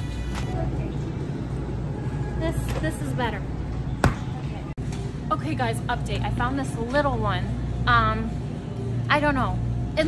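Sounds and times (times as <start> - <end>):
store ambient hum: 0.0 - 10.0.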